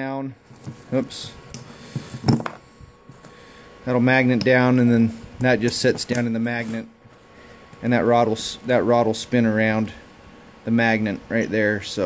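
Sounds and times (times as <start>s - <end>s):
man speaking: 0.0s - 1.4s, 3.8s - 6.9s, 7.8s - 10.0s, 10.6s - 12.0s.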